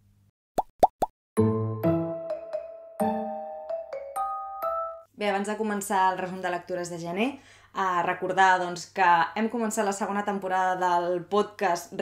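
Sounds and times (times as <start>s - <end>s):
musical intro jingle: 1.4s - 5.1s.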